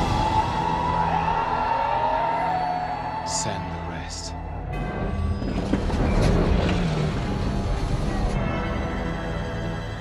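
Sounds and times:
orchestral music: 0.0s - 10.0s.

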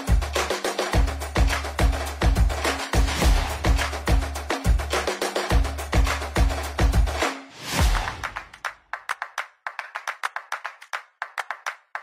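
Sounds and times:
rhythmic hand clapping: 0.0s - 12.0s.

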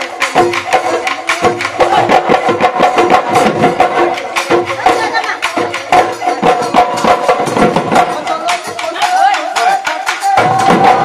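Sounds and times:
drums beaten in fast rhythm: 0.0s - 11.0s.

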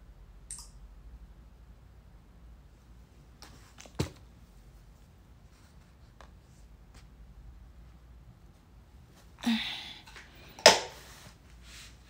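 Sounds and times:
faint low hum: 0.0s - 12.0s
sharp click: 0.5s - 0.8s.

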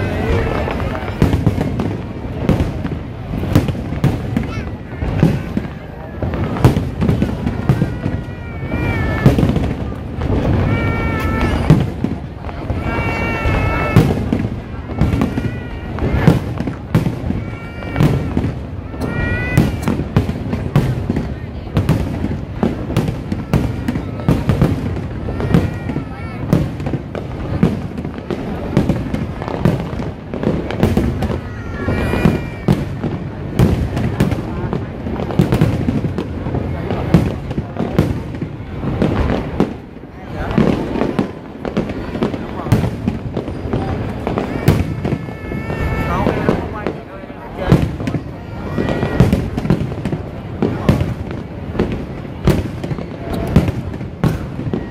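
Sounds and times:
crowd voices: 0.0s - 54.9s
fireworks bursts and bangs: 0.0s - 54.9s.

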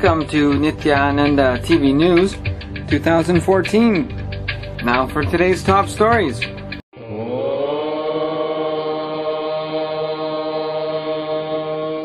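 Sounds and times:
person chanting a long note: 7.0s - 12.0s.

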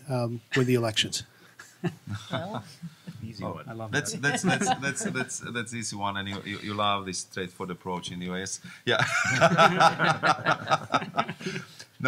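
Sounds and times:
people laughing: 1.6s - 3.3s, 4.0s - 5.6s, 6.2s - 6.8s, 8.9s - 11.7s
man chuckling: 4.1s - 5.4s.

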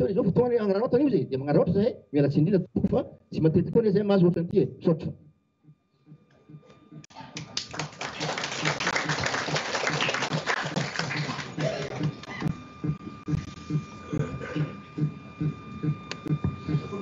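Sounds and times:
low voices murmuring: 6.0s - 17.0s
people clapping: 7.1s - 12.5s.

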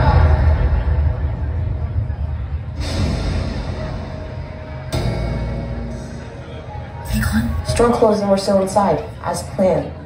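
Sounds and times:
deep low-pitched trailer music: 0.0s - 9.2s.

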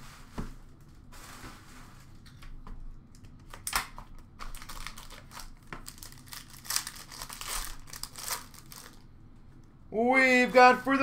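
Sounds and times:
foil wrapper crinkling and tearing: 4.1s - 9.1s.

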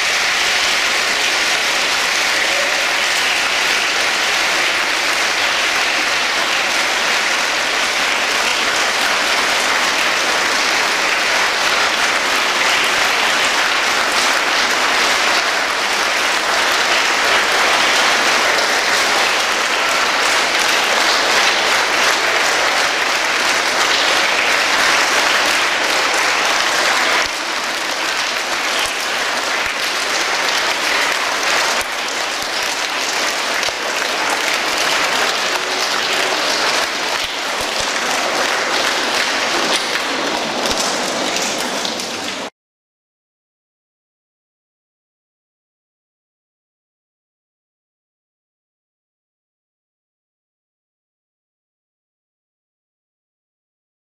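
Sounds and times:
audience applause: 0.0s - 42.5s.

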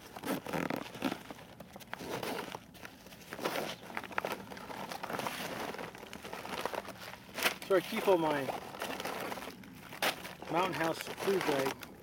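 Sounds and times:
crinkling and rustling: 0.0s - 12.0s
backpack zipper pulled open: 0.1s - 1.2s.

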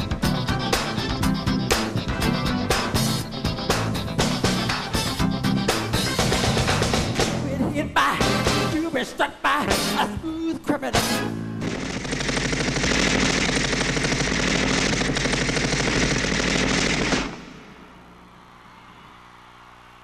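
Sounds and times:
machine-gun fire sound effect: 11.0s - 18.1s.

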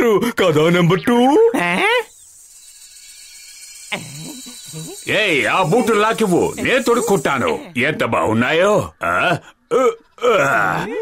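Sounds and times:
faint high-pitched hiss: 2.0s - 9.0s
person speaking: 4.8s - 8.6s.

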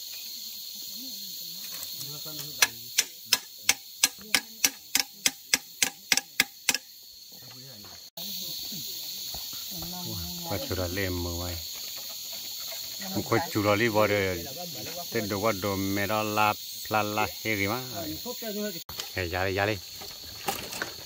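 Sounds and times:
insects droning: 0.0s - 21.0s
hammer knocking metal blade: 3.0s - 6.8s
people talking: 13.0s - 19.8s.

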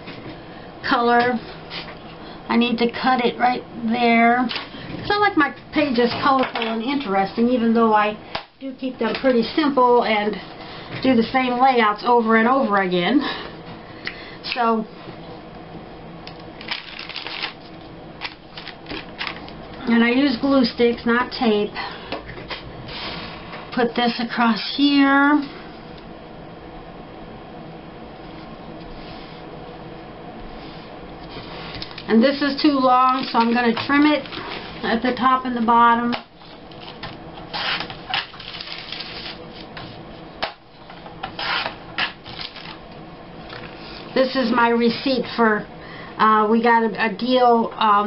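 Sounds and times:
paper crackling: 16.6s - 19.6s, 36.7s - 39.7s, 41.4s - 42.8s
paper rustling: 36.7s - 39.9s.

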